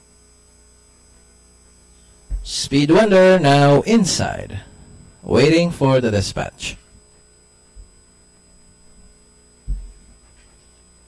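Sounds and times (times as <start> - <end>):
low hum: 1.6 - 10.8
dull low thump: 2.3 - 2.5, 9.6 - 10.1.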